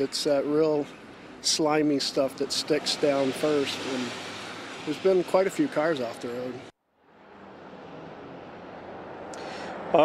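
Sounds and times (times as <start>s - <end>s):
traffic on wet road: 0.0s - 10.0s.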